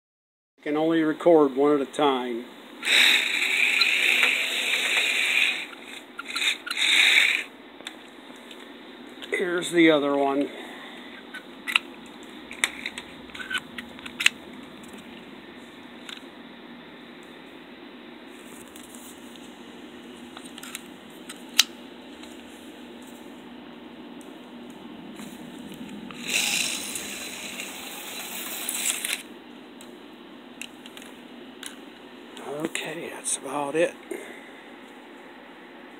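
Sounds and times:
slot car motor humming: 0:02.8 - 0:05.7, 0:25.2 - 0:29.2.

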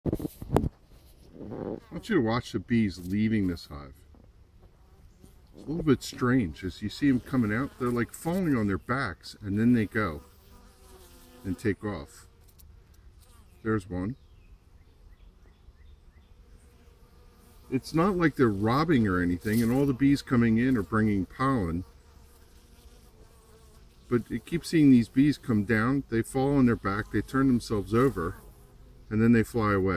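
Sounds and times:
honeybee buzz: 0:01.1 - 0:03.8, 0:04.5 - 0:29.9.

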